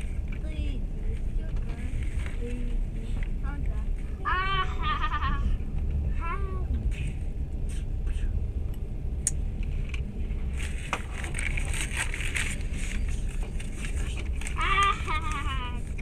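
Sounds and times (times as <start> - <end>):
train rumbling: 0.0 - 16.0.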